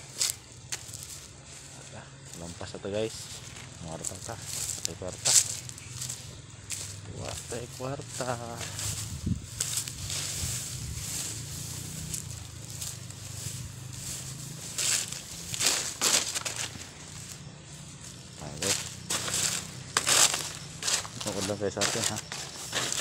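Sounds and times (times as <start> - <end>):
steady low rumble: 0.0 - 21.4
dry leaves rustling and crackling: 0.0 - 23.0.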